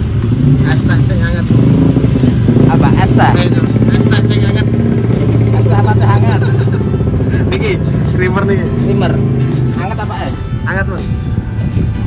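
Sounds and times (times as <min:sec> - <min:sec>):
vehicle engine running: 0:00.0 - 0:12.0
voices: 0:00.4 - 0:12.0.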